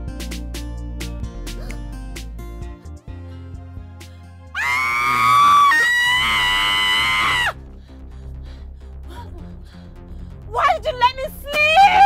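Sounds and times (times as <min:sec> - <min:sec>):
background music: 0:00.0 - 0:12.0
woman screaming: 0:04.6 - 0:07.6, 0:11.6 - 0:12.0.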